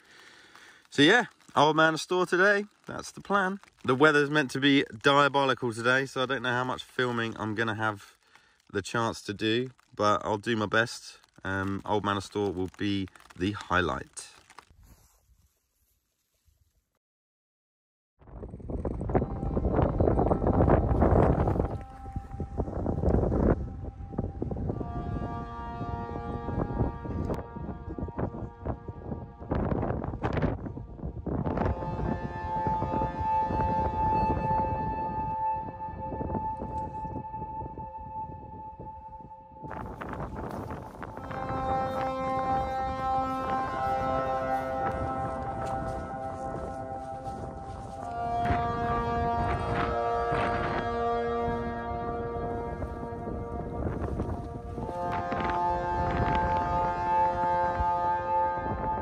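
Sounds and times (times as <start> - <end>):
wind buffeting microphone: 18.2 - 59.0.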